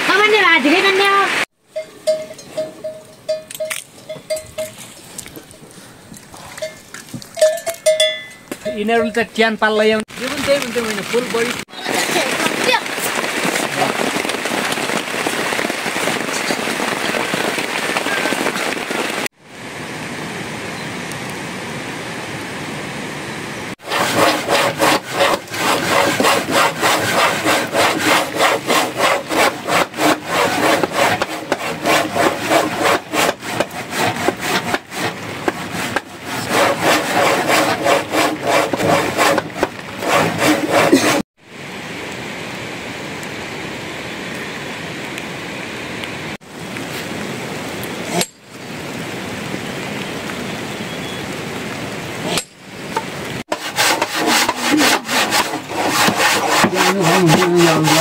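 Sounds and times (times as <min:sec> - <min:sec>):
blade scraping wood: 0:23.8 - 0:41.2, 0:53.5 - 0:58.0.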